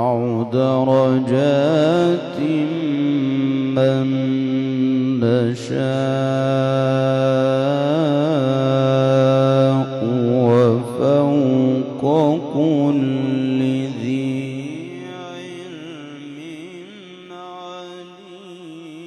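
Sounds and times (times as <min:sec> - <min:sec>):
man reciting melodically: 0:00.0 - 0:19.0.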